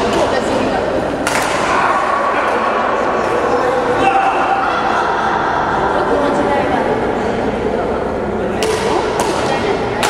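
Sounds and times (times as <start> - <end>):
hubbub of voices: 0.0 - 10.0.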